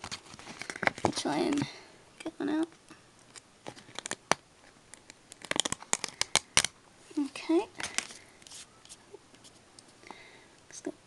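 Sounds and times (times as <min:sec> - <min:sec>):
stickers crackling and clicking: 0:03.3 - 0:06.7.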